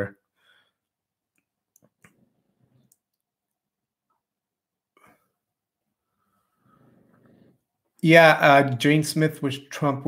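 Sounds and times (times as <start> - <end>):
faint sharp clicks: 1.3 - 2.2
man speaking: 8.0 - 10.0.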